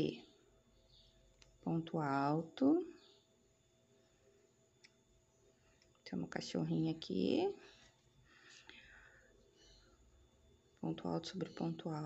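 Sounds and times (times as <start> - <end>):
faint soft noises: 2.6 - 12.0.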